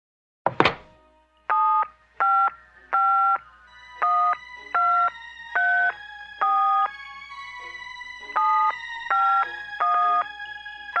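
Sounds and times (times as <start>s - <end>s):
touch-tone keypad beeps: 8.4s - 10.2s.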